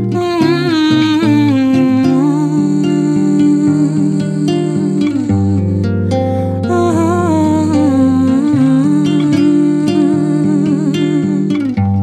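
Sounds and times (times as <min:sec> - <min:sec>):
soft acoustic guitar: 0:00.0 - 0:12.0
woman singing wordlessly: 0:00.0 - 0:12.0.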